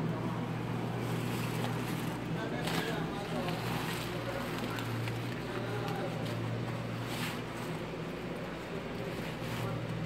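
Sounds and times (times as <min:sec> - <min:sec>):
faint voices: 0:00.0 - 0:10.0
steady low hum: 0:00.0 - 0:10.0.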